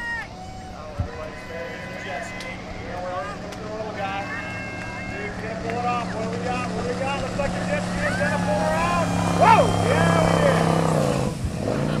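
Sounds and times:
loud shout: 0.0 - 10.6
people's voices: 0.0 - 11.0
motorboat engines droning: 0.0 - 12.0.

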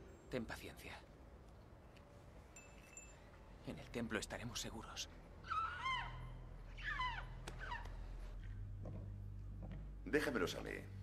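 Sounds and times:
low steady hum: 0.0 - 11.0
animal squeaky calls: 5.4 - 8.0.

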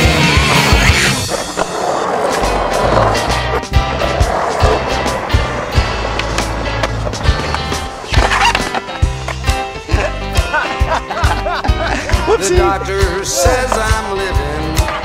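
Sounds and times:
skateboard wheels rolling on concrete: 0.0 - 15.0
skateboard grinding on metal rail: 0.4 - 9.4
music with steady drum beat: 8.8 - 15.0.

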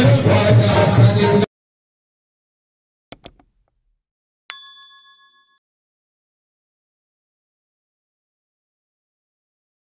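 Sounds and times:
mouse clicks: 3.1 - 3.8
bell chime: 4.5 - 5.6.

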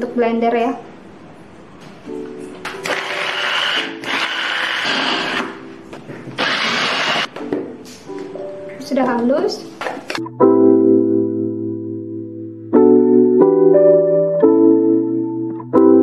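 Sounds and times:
background music: 1.9 - 16.0
electric mini chopper whirring: 2.8 - 5.6, 6.4 - 7.3.

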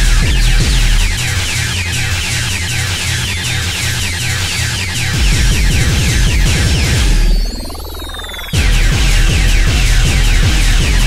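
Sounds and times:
heavy bass drum: 0.0 - 7.6, 8.4 - 11.0
high synth sequence: 0.0 - 11.0
pulsing synth bass line: 0.0 - 11.0.

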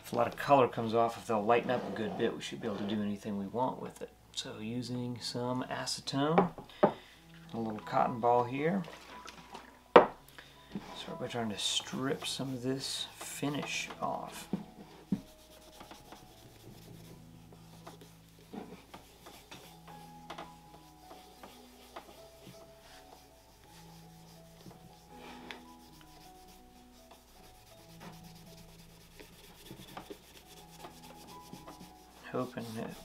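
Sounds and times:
soft background music: 0.0 - 33.0
cotton ball rubbing on leather shoe: 15.0 - 33.0.

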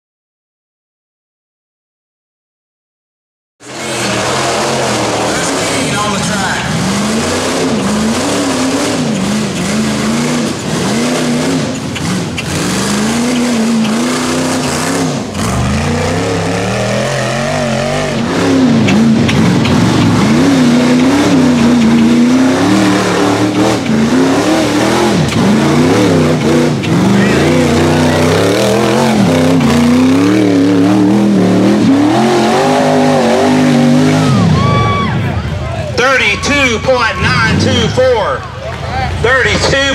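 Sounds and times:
engine revving hard: 3.6 - 35.0.

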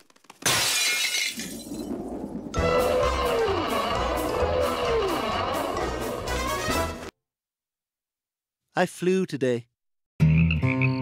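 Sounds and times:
window glass shattering: 0.4 - 1.9.

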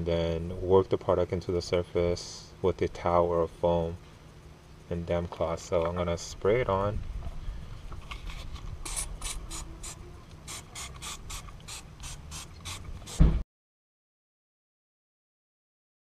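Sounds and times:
spray bottle spritzing: 8.8 - 13.3
thump: 13.1 - 13.4.

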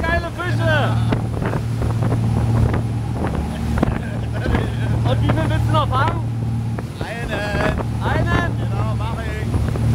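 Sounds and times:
motorboat engine droning: 0.0 - 9.9
rushing wake water: 0.0 - 9.9
wind buffeting microphone: 0.0 - 9.9.

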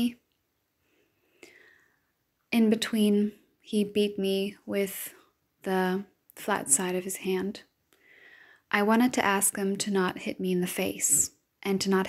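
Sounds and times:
woman speaking: 0.0 - 0.2, 2.5 - 7.6, 8.7 - 12.0
soft breath drawn in: 0.8 - 2.1, 7.9 - 8.7.

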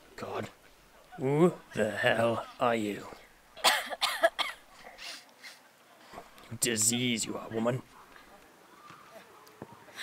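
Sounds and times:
woman coughing: 3.6 - 4.6.

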